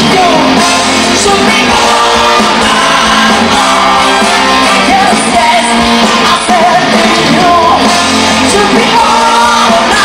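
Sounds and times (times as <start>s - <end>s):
live band playing a song: 0.0s - 10.0s
people singing: 0.0s - 10.0s.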